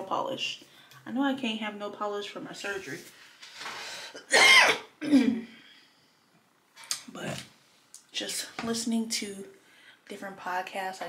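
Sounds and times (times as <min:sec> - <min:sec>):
woman coughing: 0:04.2 - 0:05.5.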